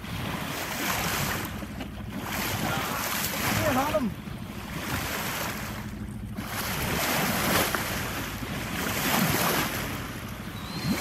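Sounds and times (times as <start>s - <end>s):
water splashing along hull: 0.0s - 11.0s.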